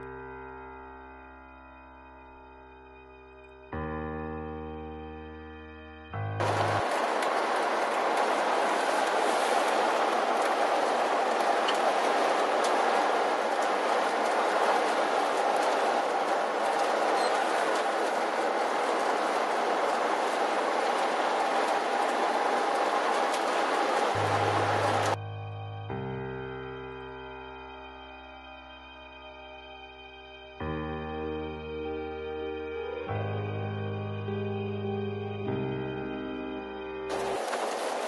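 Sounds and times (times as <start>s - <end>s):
background music: 0.0s - 38.0s
road and wind noise hiss: 6.4s - 25.2s, 37.1s - 38.0s.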